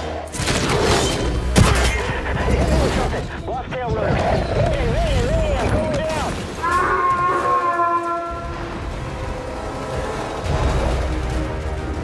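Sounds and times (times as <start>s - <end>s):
film score music: 0.0s - 12.0s.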